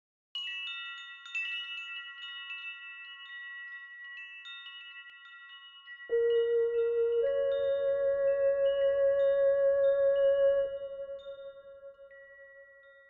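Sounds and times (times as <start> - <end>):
wind chimes tinkling: 0.4 - 13.0
meditation music: 0.6 - 13.0.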